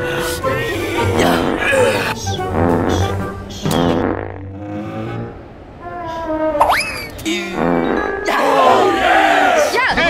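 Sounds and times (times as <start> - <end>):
men yelling and groaning: 8.3 - 10.0.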